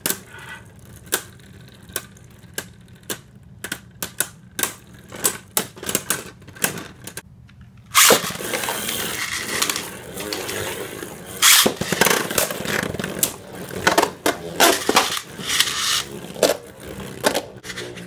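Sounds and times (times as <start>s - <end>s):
rattling scrape: 7.9s - 18.0s
spinning tops clacking: 7.9s - 18.0s.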